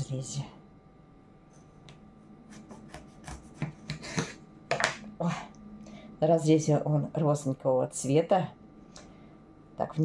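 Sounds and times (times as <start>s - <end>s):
knife sawing through tomato: 2.5s - 4.3s.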